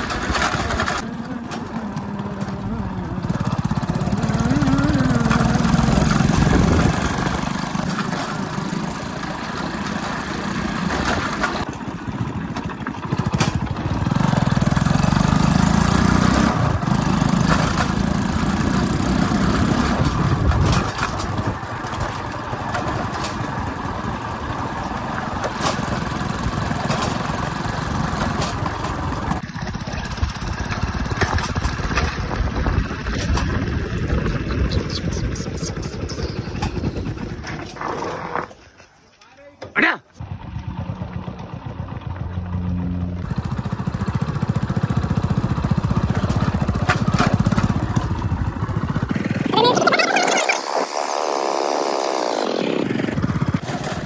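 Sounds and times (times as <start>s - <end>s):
small motorcycle engine: 0.0s - 38.6s, 40.1s - 54.0s.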